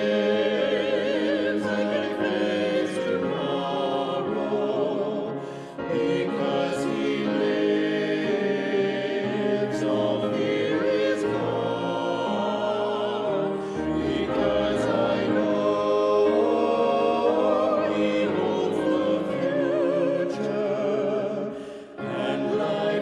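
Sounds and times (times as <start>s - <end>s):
church choir singing: 0.0s - 23.0s.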